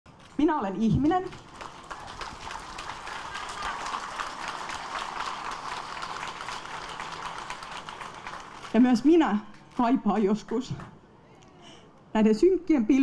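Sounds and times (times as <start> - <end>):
audience applauding: 1.3 - 9.8.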